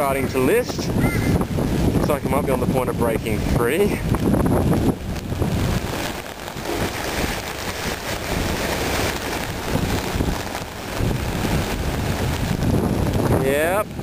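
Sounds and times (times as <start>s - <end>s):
gusty wind on microphone: 0.0s - 14.0s
rain hiss: 0.0s - 14.0s.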